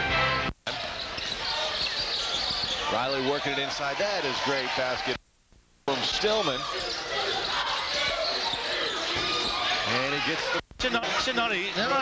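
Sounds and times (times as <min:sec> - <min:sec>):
crowd noise: 0:00.0 - 0:05.2, 0:05.9 - 0:12.0.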